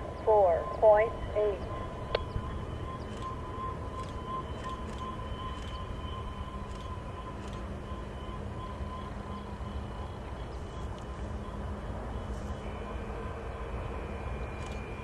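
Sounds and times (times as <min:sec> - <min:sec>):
distant diesel locomotives rumbling: 0:00.0 - 0:15.0
steady pulsing high tone: 0:00.0 - 0:15.0.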